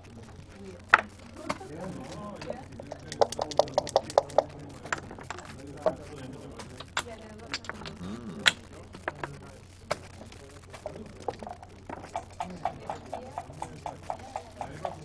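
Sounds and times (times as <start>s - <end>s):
checkers and dice clicking on board: 1.9s - 15.0s.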